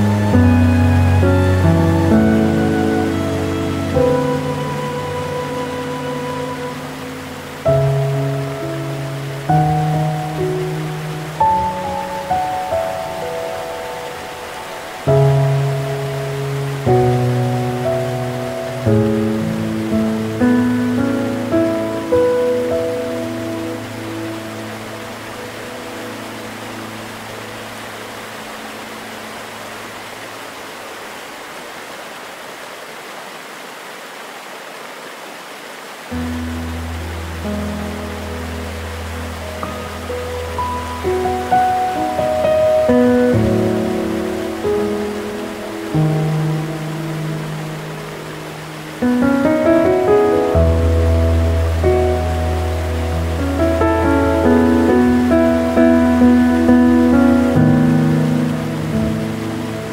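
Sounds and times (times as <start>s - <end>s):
gentle piano music: 0.0s - 30.6s, 36.1s - 59.9s
waterfall rushing: 0.0s - 59.9s.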